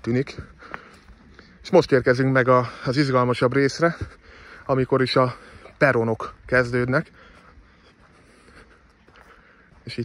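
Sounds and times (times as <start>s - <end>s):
man speaking: 0.0s - 0.6s, 1.6s - 7.1s
outdoor background noise: 0.0s - 10.0s.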